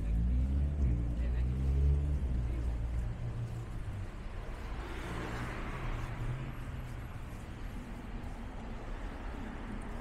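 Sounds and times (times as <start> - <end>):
general traffic noise: 0.0 - 10.0
vehicle engine rumble passing: 0.0 - 10.0.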